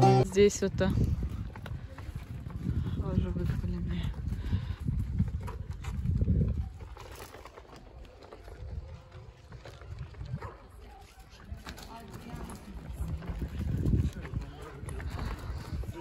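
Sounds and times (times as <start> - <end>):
footsteps on a path: 0.0 - 16.0
wind rumbling on microphone: 0.3 - 10.8, 12.2 - 16.0
faint voices: 1.2 - 16.0.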